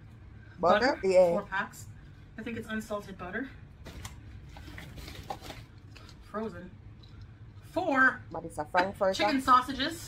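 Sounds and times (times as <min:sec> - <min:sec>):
low steady hum: 0:00.0 - 0:10.0
plastic bag crinkling: 0:03.9 - 0:06.2.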